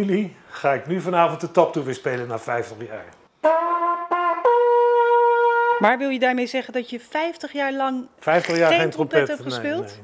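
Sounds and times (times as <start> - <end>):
bugle blowing: 3.4 - 5.8.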